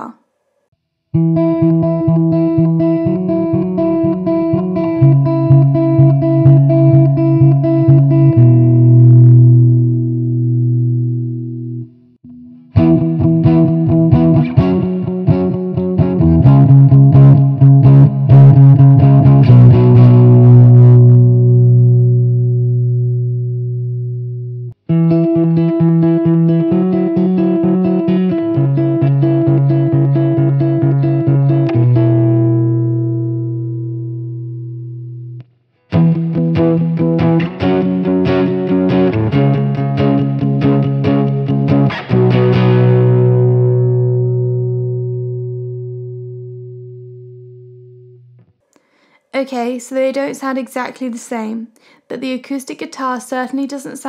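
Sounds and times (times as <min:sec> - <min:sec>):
acoustic guitar through amp: 0:01.2 - 0:48.5
distorted electric guitar chords: 0:01.2 - 0:48.6.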